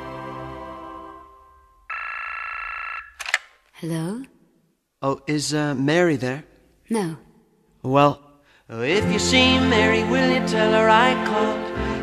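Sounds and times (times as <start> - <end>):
telephone tone: 1.6 - 3.3.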